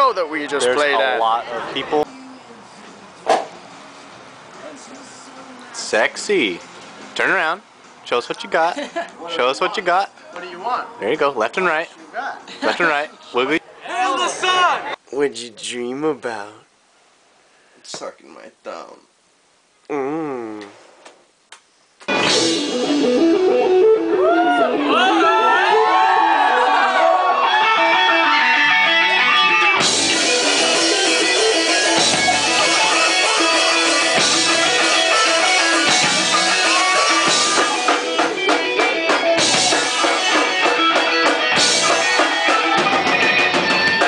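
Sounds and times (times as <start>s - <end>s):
drums: 22.0s - 26.4s, 27.4s - 44.0s
guitar riff: 22.1s - 44.0s
progressive rock music: 22.1s - 44.0s.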